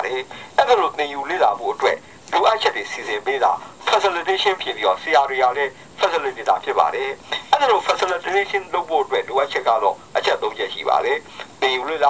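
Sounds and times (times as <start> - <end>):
tinny narrator voice: 0.0 - 12.0.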